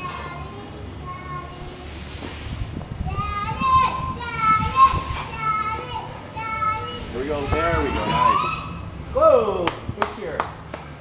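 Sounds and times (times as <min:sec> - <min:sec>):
low rumble: 0:00.0 - 0:10.3
young child shouting a chant: 0:03.0 - 0:08.8.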